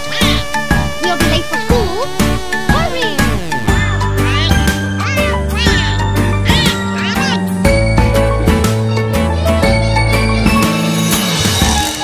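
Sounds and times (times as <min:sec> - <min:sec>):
orchestral cartoon music: 0:00.0 - 0:12.0.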